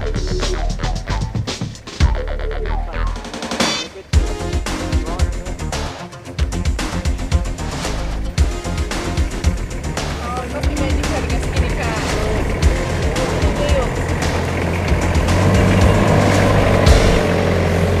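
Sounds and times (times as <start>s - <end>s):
vehicle engine running low: 2.1s - 18.0s.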